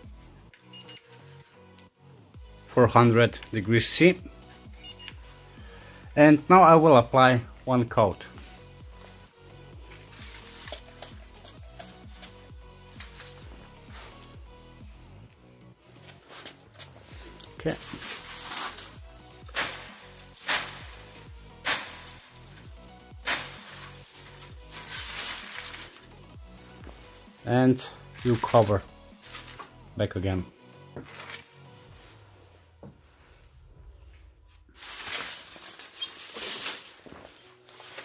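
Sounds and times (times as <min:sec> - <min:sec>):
aluminium foil crinkling: 0:10.0 - 0:13.4, 0:16.3 - 0:26.1, 0:28.2 - 0:29.7, 0:34.7 - 0:38.0.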